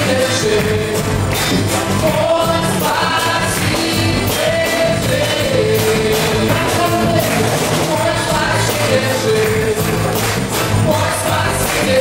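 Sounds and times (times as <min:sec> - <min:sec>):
band playing worship music: 0:00.0 - 0:12.0
steady drum beat: 0:00.0 - 0:12.0
voices singing together: 0:00.0 - 0:12.0.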